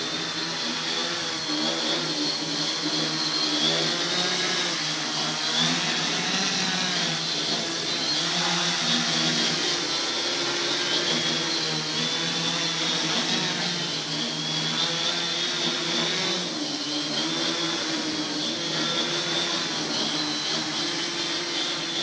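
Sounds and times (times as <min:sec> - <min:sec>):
quadcopter propellers buzzing: 0:00.0 - 0:22.0.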